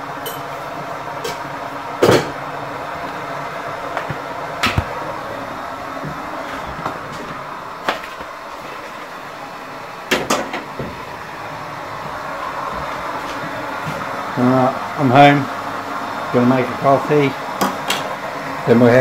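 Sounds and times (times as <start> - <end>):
steady background hiss: 0.0 - 19.0.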